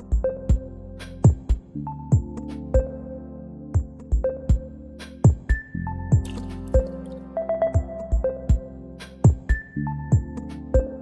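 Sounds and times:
deep kick drum beat: 0:00.1 - 0:02.4, 0:03.8 - 0:04.6, 0:05.2 - 0:06.9, 0:07.8 - 0:10.9.

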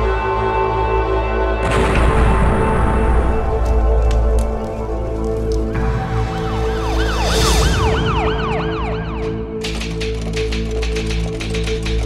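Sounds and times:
siren wailing: 0:05.8 - 0:09.6.

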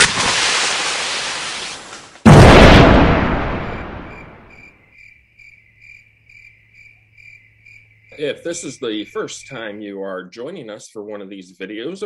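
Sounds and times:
sudden bang: 0:02.2 - 0:04.6.

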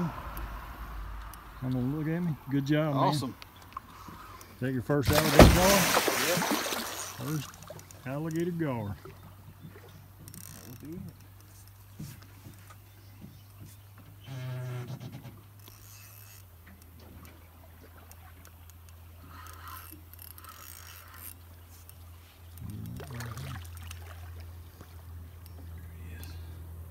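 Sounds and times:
voiced grunts: 0:22.6 - 0:23.7.

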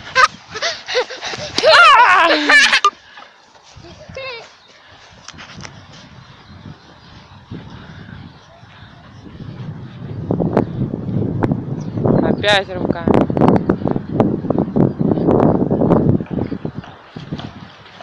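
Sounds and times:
faint outdoor background: 0:00.0 - 0:18.0
person's voice: 0:12.2 - 0:13.2.

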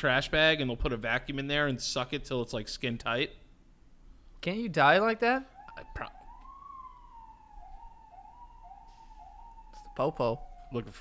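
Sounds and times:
faint police siren wailing: 0:05.0 - 0:11.0.

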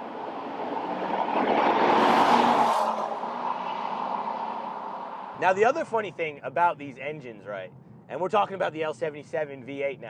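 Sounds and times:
car driving past at speed: 0:00.0 - 0:05.4.

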